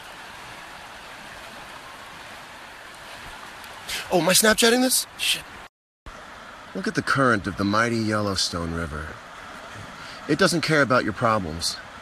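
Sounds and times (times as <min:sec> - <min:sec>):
river current rushing: 0:00.0 - 0:12.0.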